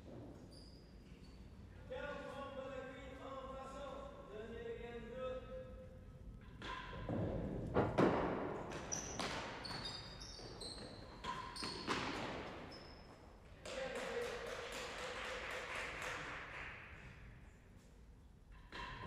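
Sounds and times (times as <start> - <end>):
shoe squeaks: 0.0 - 1.7, 8.7 - 13.2
ball bouncing off walls and floor: 6.4 - 12.9
people clapping: 13.4 - 17.4.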